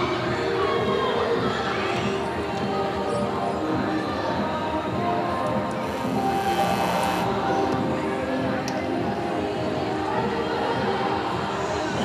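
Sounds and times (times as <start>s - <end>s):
music with sustained tones: 0.0s - 12.0s.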